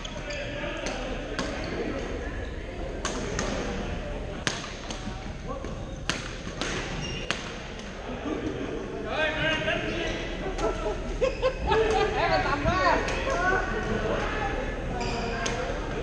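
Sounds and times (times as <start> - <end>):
murmur of voices: 0.0 - 16.0.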